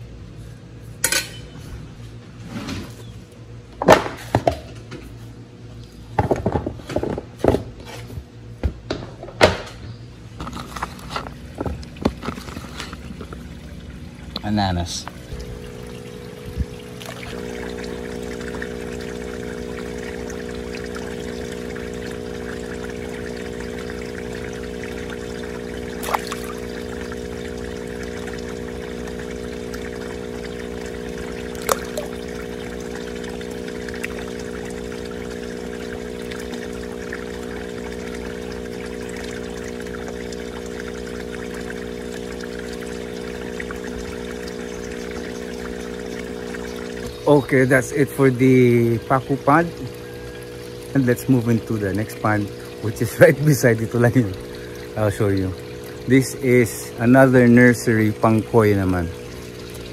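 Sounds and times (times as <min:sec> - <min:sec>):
low tones humming: 0:08.2 - 0:59.9
water pouring into pond: 0:10.4 - 0:59.9.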